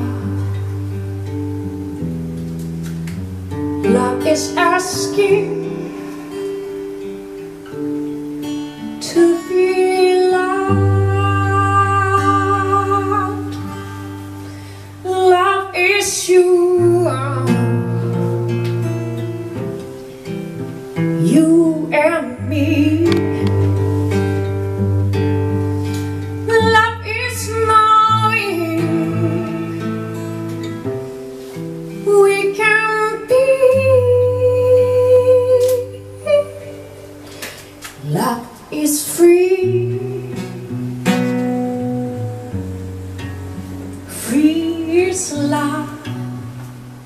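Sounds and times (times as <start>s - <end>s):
woman singing: 0.0s - 1.7s, 3.5s - 20.0s, 21.0s - 24.6s, 26.1s - 30.8s, 31.9s - 41.1s, 43.9s - 46.8s
acoustic guitar: 0.0s - 47.0s
woman singing wordless note: 3.8s - 7.8s.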